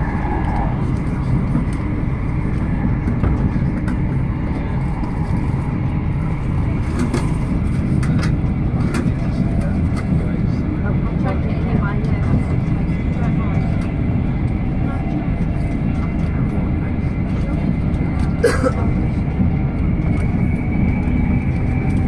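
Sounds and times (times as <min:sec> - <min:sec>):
train wheels rumbling on rails: 0:00.0 - 0:22.0.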